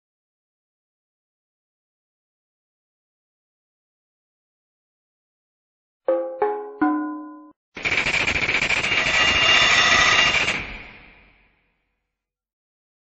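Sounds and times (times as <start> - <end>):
ringing notes stepping down: 6.1 - 7.5.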